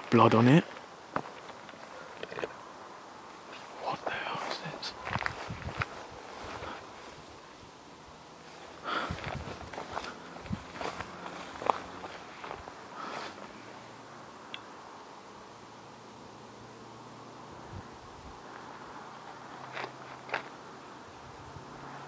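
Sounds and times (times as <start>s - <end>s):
faint hiss: 0.0s - 10.4s
footsteps through long grass: 3.6s - 7.7s, 8.4s - 13.7s.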